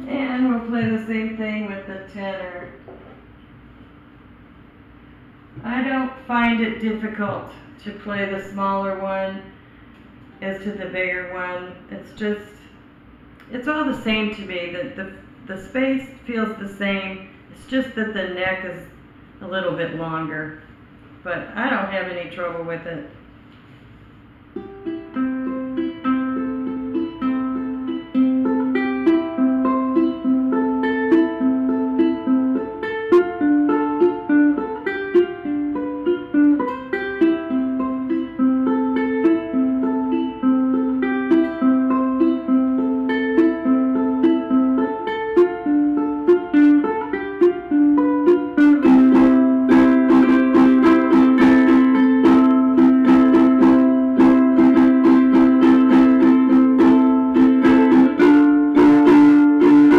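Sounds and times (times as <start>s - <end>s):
ukulele fingerpicked melody: 24.5s - 59.9s
ukulele strummed chords: 24.5s - 59.9s.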